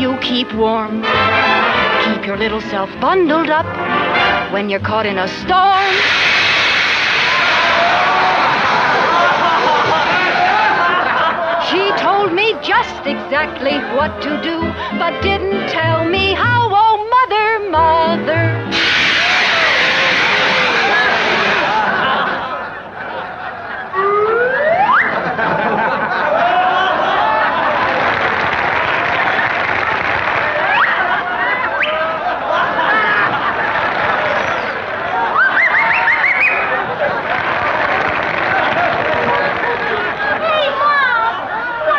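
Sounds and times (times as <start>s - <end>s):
audience laughter: 1.3s - 2.0s, 7.8s - 15.0s, 19.4s - 41.9s
audience chatter: 5.6s - 15.1s, 18.7s - 41.9s
whistle rising in pitch: 5.8s - 7.6s, 18.7s - 21.8s, 24.0s - 25.2s, 34.4s - 36.8s.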